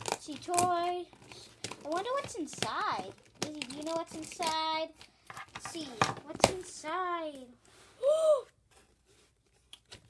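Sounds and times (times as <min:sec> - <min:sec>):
child saying ooh: 0:08.0 - 0:08.6.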